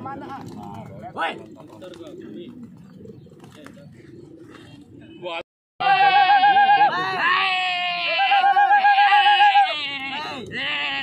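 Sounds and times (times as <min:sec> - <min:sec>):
pigeons cooing: 0:00.0 - 0:05.3.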